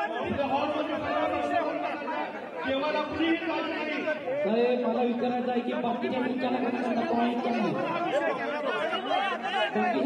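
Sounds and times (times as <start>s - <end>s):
men arguing: 0.0s - 10.0s.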